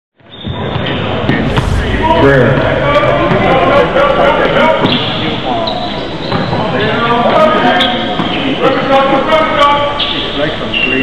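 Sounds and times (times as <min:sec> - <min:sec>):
players' voices: 0:01.2 - 0:11.0.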